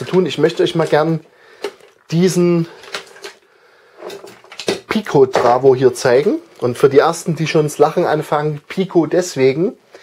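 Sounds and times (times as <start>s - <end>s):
plastic clicks and knocks: 4.0s - 5.6s.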